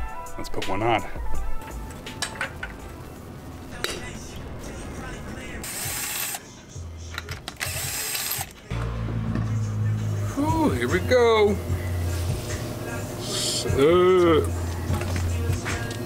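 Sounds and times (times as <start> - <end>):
impact wrench motor humming: 5.6 - 6.4, 7.6 - 8.5.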